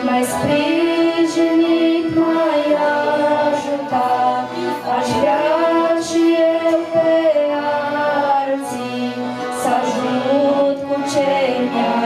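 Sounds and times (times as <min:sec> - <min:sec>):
women singing a hymn: 0:00.0 - 0:12.0.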